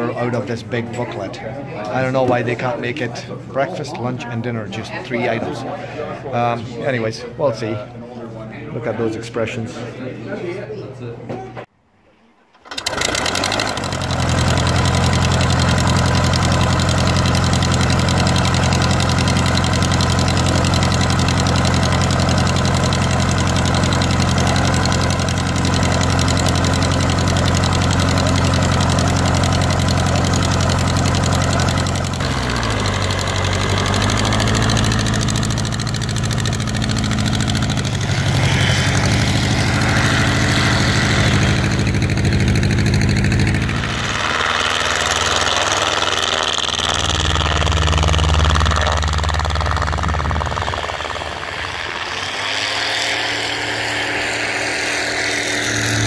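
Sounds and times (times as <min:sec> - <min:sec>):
light aircraft engine idling: 0:12.6 - 0:56.0.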